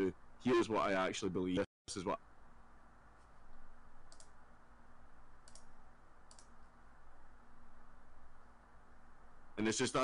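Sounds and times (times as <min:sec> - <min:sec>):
low steady background hum: 0:00.0 - 0:10.0
faint clicks: 0:03.5 - 0:04.4, 0:05.4 - 0:06.7.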